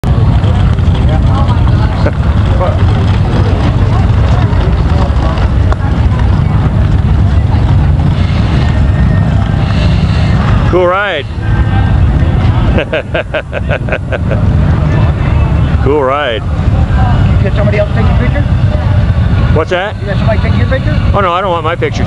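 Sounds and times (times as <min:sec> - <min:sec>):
indistinct crowd voices: 0:00.0 - 0:22.0
motorcycle engines rumbling: 0:00.0 - 0:22.0.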